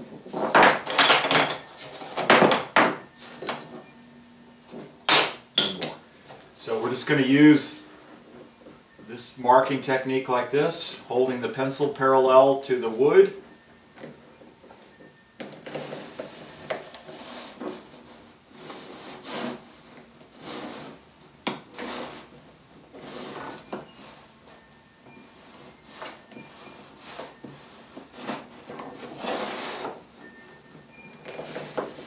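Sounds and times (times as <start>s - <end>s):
pencil scraping on plywood: 15.7s - 21.0s, 26.8s - 30.0s.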